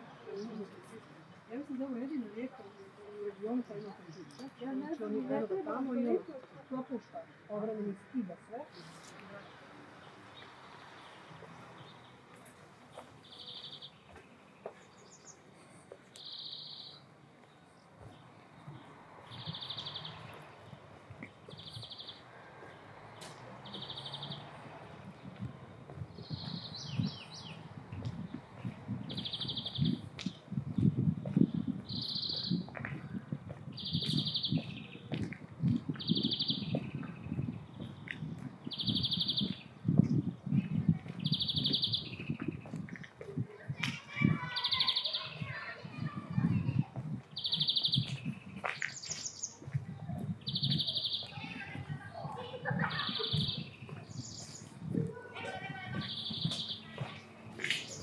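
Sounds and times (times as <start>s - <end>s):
street sound: 0.0s - 58.0s
bird chirps: 13.2s - 15.4s, 16.2s - 17.9s, 18.6s - 22.8s, 23.6s - 24.6s, 26.2s - 27.7s, 29.1s - 30.1s, 31.8s - 32.8s, 33.7s - 35.1s, 36.0s - 39.7s, 41.2s - 42.7s, 44.5s - 45.6s, 47.3s - 49.7s, 50.4s - 51.6s, 52.3s - 54.8s, 56.0s - 58.0s.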